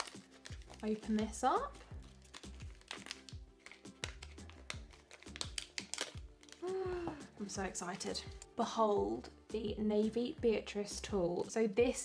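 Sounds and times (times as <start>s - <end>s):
plastic packaging crinkling: 0.0s - 7.1s
soft background music: 0.0s - 12.0s.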